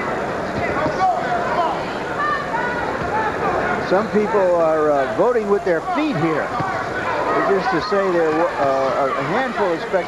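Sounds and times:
crowd murmur: 0:00.0 - 0:10.0.

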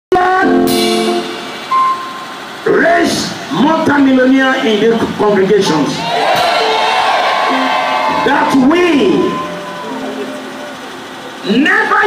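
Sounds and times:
electronic keyboard organ chord: 0:00.1 - 0:02.8, 0:06.2 - 0:12.0
steady high keyboard note: 0:00.2 - 0:02.7, 0:06.3 - 0:11.9.

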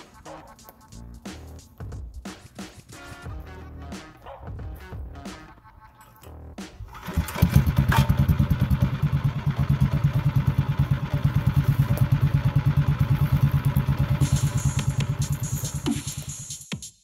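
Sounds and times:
engine idling put-put: 0:06.9 - 0:15.8.

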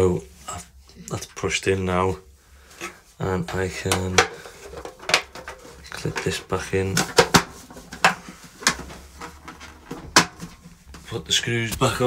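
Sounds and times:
plastic cover clicking into place: 0:03.5 - 0:10.6.

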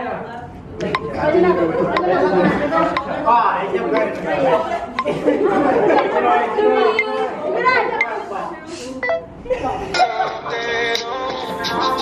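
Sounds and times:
overlapping chatter in large room: 0:00.0 - 0:12.0.

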